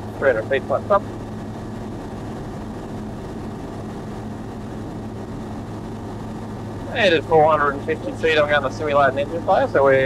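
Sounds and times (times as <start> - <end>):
light aircraft engine hum: 0.0 - 10.0.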